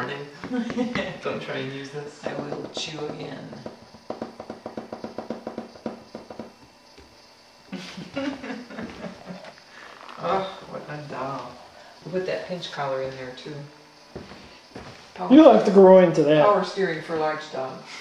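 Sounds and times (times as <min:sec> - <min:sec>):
person laughing: 0:07.7 - 0:09.6.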